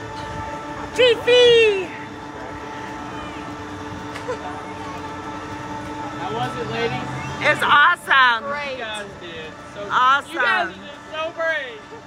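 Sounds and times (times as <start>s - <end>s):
mechanical drone with hum: 0.0s - 12.0s.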